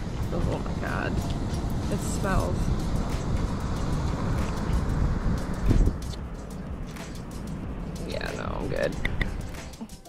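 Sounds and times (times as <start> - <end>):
wind buffeting the microphone: 0.0 - 9.6.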